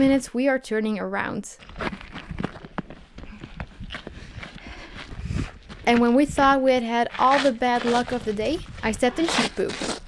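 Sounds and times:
footsteps on wet gravel: 1.6s - 10.0s.

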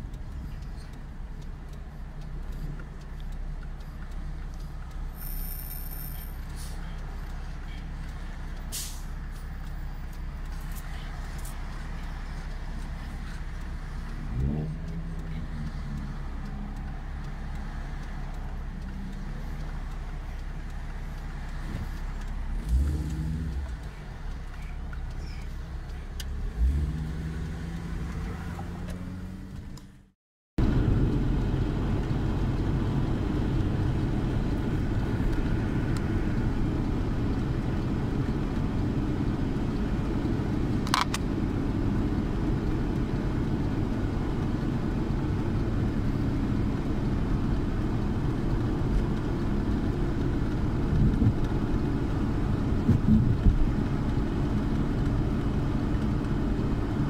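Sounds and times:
engine and road noise: 0.0s - 57.0s
engine accelerating: 9.6s - 57.0s.

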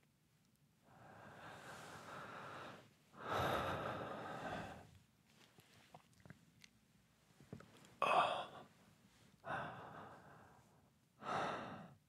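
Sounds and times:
man breathing: 0.9s - 4.9s.

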